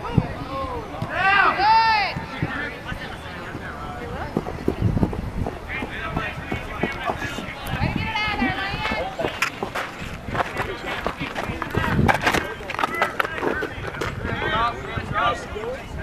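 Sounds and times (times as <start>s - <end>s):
people shouting: 0.0s - 2.3s
running footsteps: 2.2s - 14.6s.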